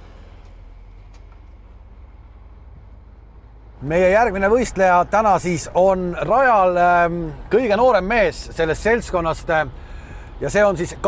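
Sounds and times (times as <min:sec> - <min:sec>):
vehicle and road rumble: 0:00.0 - 0:11.0.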